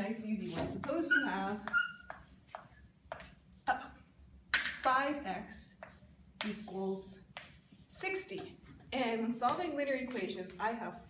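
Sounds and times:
chalk scraping on chalkboard: 0.4 - 3.5.

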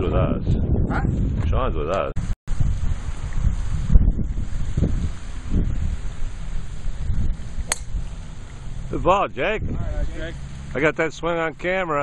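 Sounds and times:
wind buffeting microphone: 0.0 - 11.8
golf ball struck by driver: 7.5 - 8.6.

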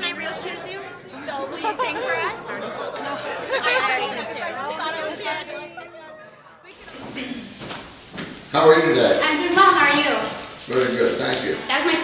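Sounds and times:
people laughing: 0.0 - 7.6
people chattering: 0.0 - 12.0.

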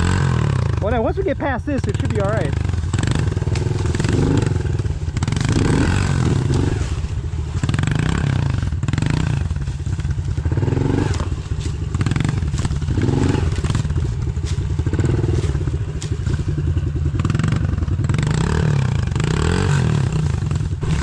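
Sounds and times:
small motorbike engines revving: 0.0 - 21.0.

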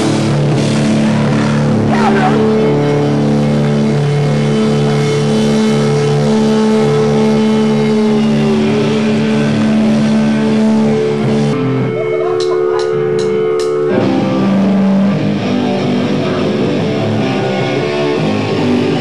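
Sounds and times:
distorted electric guitars: 0.0 - 19.0
live rock band: 0.0 - 19.0.

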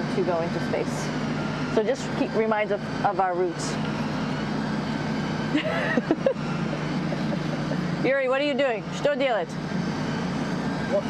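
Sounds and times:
ventilation fans whirring: 0.0 - 11.0.

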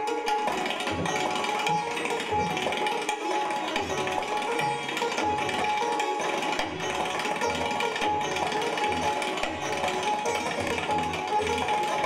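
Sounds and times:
sitar plucked melody: 0.0 - 12.0
tabla strokes: 0.0 - 12.0.

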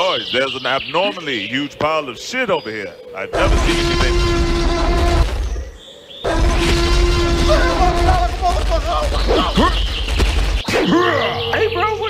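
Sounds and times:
cartoon dinosaur roar: 3.3 - 5.3, 6.2 - 8.3.

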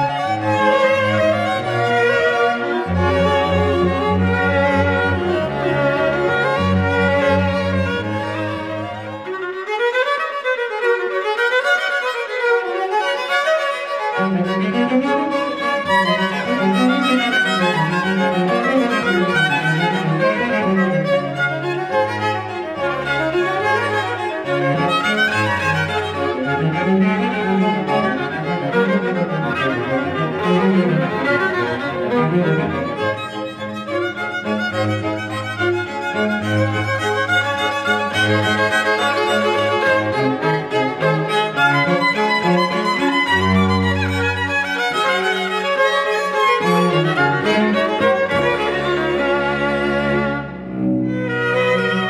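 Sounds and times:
cello bass line: 0.0 - 52.0
violins playing melody: 0.0 - 52.0.

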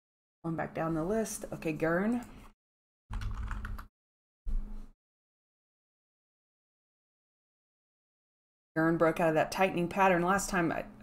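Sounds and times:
computer keyboard keys clicking: 3.1 - 3.9.

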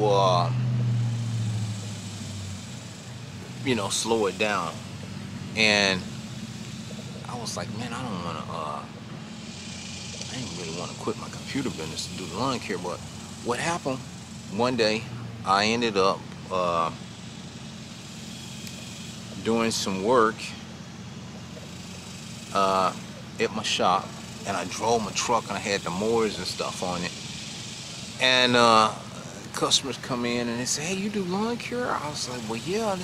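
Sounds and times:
low engine hum: 0.0 - 33.0.

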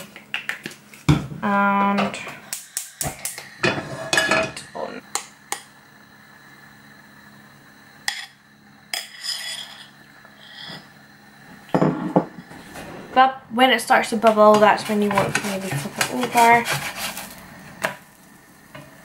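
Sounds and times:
kitchenware clatter: 3.6 - 4.7, 11.7 - 12.4, 14.2 - 17.2
kitchenware clinking and knocking: 3.6 - 4.7, 11.7 - 12.4.

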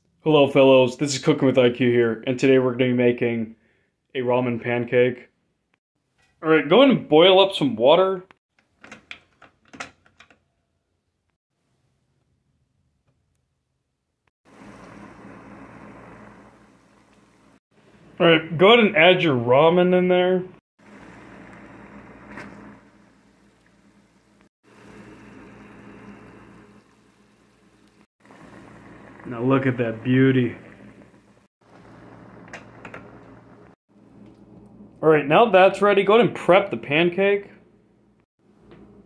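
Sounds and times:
water boiling in saucepan: 14.5 - 17.6, 20.8 - 33.8.

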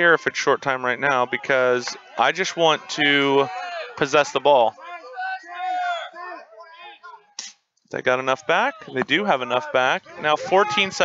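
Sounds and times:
men talking softly: 0.0 - 7.1, 8.0 - 11.0
loud speech: 0.0 - 7.3, 8.0 - 11.0.

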